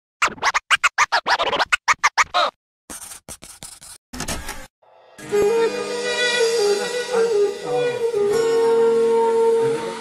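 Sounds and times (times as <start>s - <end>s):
turntable scratching: 0.2s - 2.6s.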